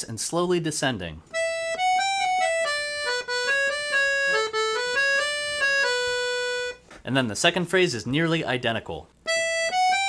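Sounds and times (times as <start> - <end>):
accordion playing jig melody: 1.3 - 6.8, 9.3 - 10.0.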